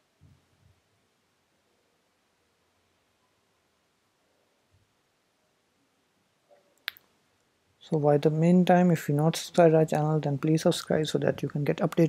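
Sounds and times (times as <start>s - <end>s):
man speaking: 7.8s - 12.0s.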